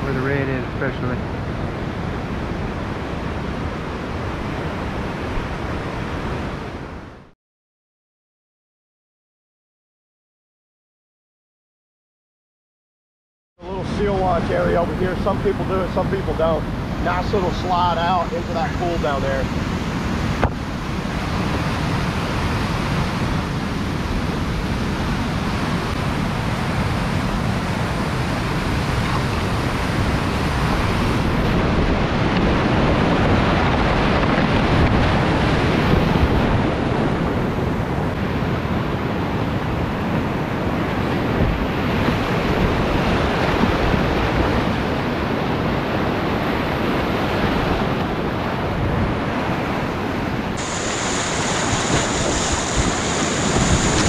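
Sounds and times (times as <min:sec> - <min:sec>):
whitewater rushing: 0:00.0 - 0:07.0, 0:13.6 - 0:54.0.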